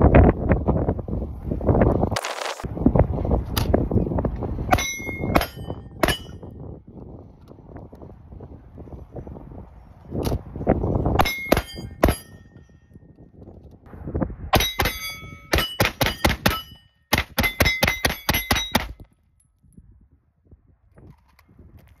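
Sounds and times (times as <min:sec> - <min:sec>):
ringing metallic clang: 0:04.7 - 0:06.5, 0:11.2 - 0:13.0, 0:14.6 - 0:19.0.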